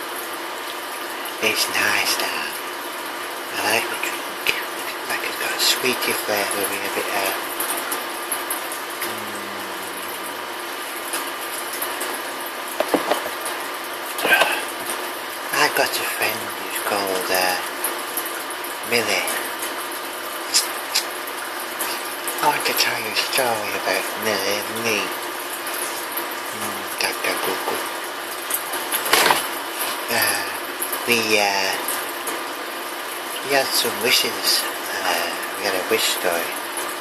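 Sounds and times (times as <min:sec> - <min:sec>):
steady hiss: 0:01.1 - 0:07.8, 0:09.0 - 0:17.8, 0:20.3 - 0:28.2, 0:28.8 - 0:32.0, 0:33.4 - 0:36.6
person drinking from plastic cup: 0:09.0 - 0:10.2, 0:14.2 - 0:14.8
brief vocal sound: 0:09.0 - 0:10.4, 0:14.2 - 0:14.8, 0:26.6 - 0:27.0
muffled hum through pacifier: 0:09.0 - 0:10.5.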